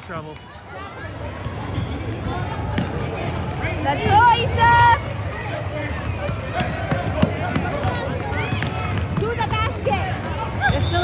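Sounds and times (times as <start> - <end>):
crowd noise hum: 0.0 - 11.0
basketball bouncing: 6.0 - 10.0.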